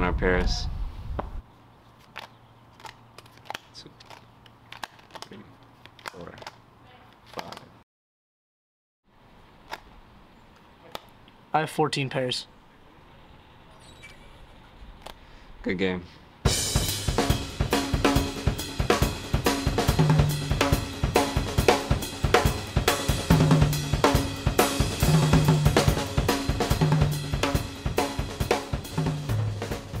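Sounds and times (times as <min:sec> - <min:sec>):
music with drums and bass: 0:16.5 - 0:30.0.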